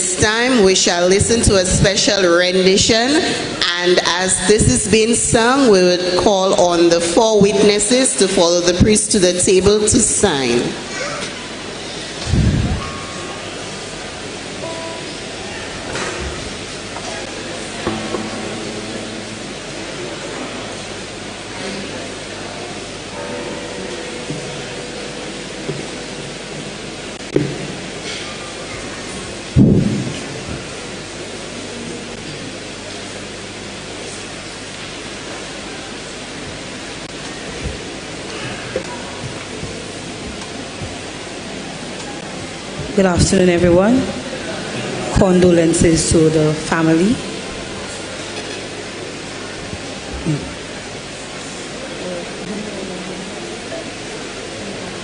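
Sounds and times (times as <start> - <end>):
rushing room noise: 10.8 - 45.1.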